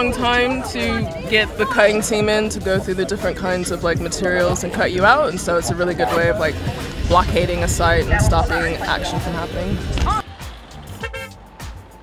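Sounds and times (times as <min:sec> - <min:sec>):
quiet background music: 0:00.0 - 0:12.0
horn toot: 0:10.9 - 0:11.4.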